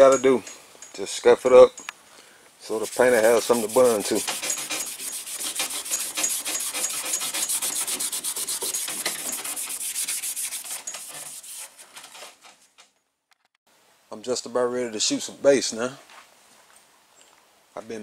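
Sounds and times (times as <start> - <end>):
scuff pad scrubbing metal: 2.7 - 11.9.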